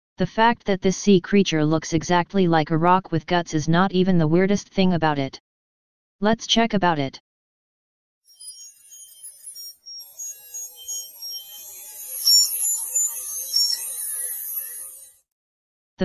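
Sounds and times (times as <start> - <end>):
chiming high notes: 8.3 - 15.2
short high beeping tones: 8.3 - 15.2.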